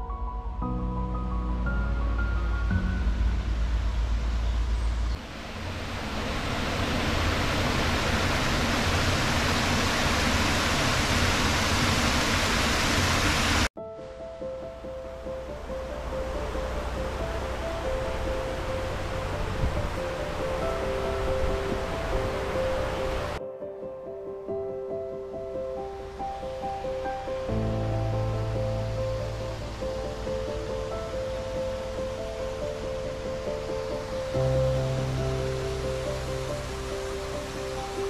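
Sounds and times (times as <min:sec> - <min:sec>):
soft background music: 0:00.0 - 0:05.2, 0:13.8 - 0:38.0
loud rushing noise: 0:01.8 - 0:13.7, 0:15.5 - 0:23.4.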